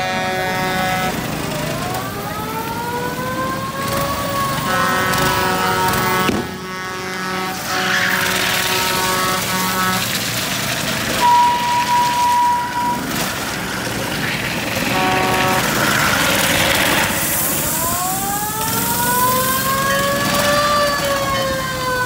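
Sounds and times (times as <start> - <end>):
horn-like tone blasts: 0.0 - 1.2, 4.7 - 10.2, 11.2 - 13.5, 14.8 - 17.1
small gasoline engines passing: 0.0 - 22.0
held high tone: 11.2 - 13.8.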